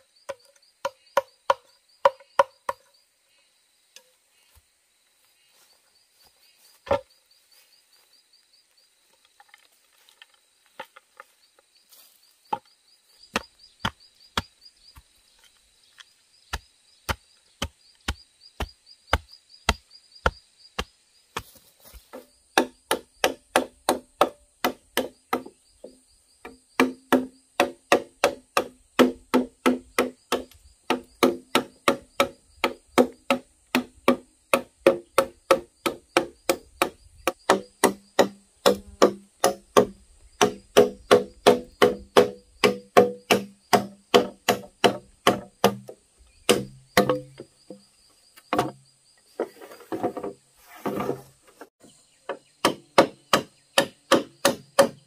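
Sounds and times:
high insect buzz: 0.0 - 55.0
machete chopping hollow bamboo: 0.3 - 2.8, 13.3 - 15.1, 16.5 - 47.8, 48.5 - 48.8, 52.3 - 55.0
sharp knocks: 26.8 - 47.5, 48.5 - 48.8.

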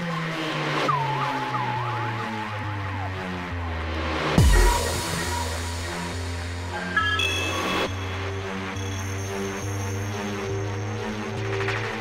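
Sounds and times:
dubstep track with bass line: 1.6 - 12.0.

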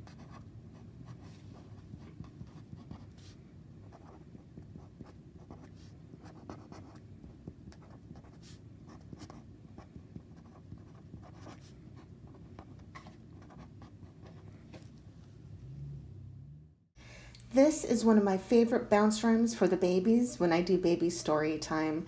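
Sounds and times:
felt-tip pen writing on paper: 0.0 - 14.5.

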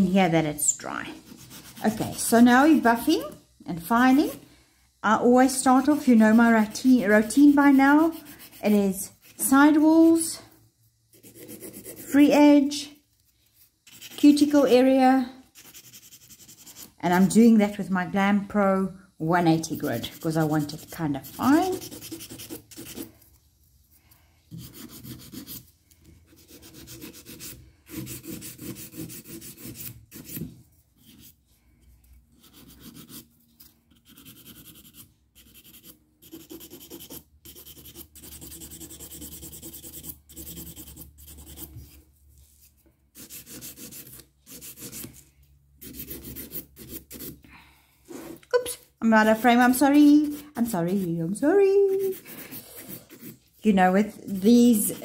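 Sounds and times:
nail file rasping on nail: 1.3 - 2.2, 5.8 - 10.0, 11.1 - 12.2, 13.9 - 14.5, 15.5 - 17.0, 19.5 - 23.1, 24.5 - 25.7, 26.3 - 30.4, 32.4 - 41.8, 43.2 - 45.2, 45.8 - 47.4, 51.9 - 53.5.

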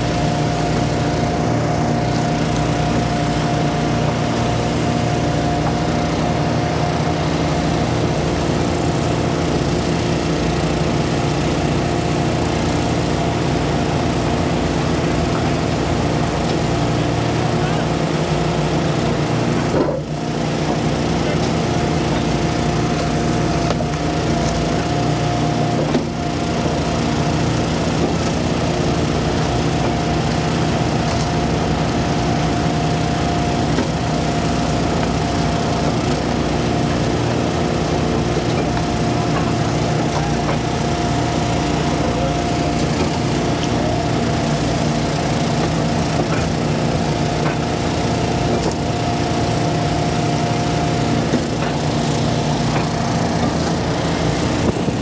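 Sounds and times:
small gas engine running: 0.0 - 55.0.

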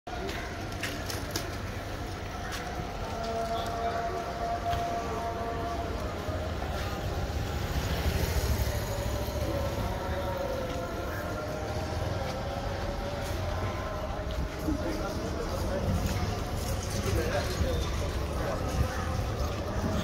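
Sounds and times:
traffic rumble: 0.1 - 20.0.

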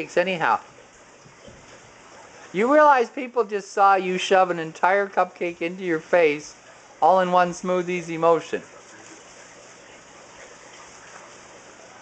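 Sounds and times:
running water from aquarium filters: 0.0 - 12.0.

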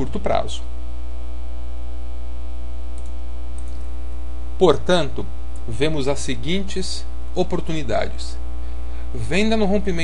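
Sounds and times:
electrical mains hum: 0.0 - 10.0
faint buzz: 0.0 - 10.0.

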